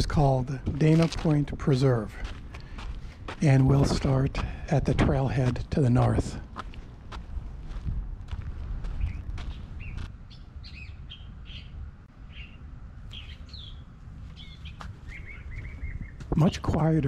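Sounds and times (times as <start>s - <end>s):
footsteps on dirt trail: 0.0s - 10.2s, 14.2s - 16.8s
low rumble: 0.0s - 16.4s
small birds chirping: 8.8s - 17.0s.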